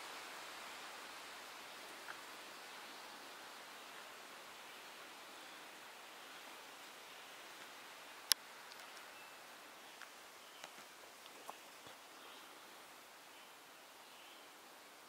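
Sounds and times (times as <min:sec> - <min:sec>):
outdoor background hiss: 0:00.0 - 0:15.0
faint ticks: 0:07.6 - 0:09.1, 0:10.0 - 0:12.1.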